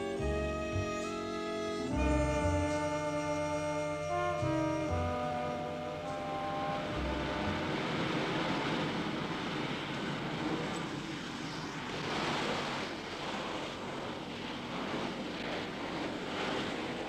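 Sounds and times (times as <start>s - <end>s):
brass music phrase: 0.0s - 8.2s.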